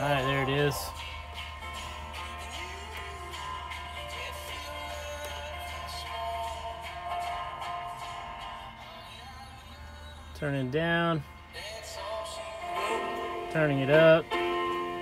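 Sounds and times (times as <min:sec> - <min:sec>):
music from car radio speakers: 0:00.0 - 0:15.0.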